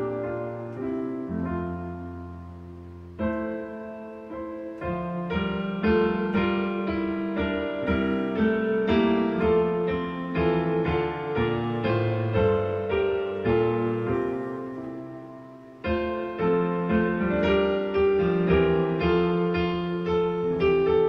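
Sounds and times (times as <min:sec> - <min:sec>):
hymn chords on digital piano: 0:00.0 - 0:21.0.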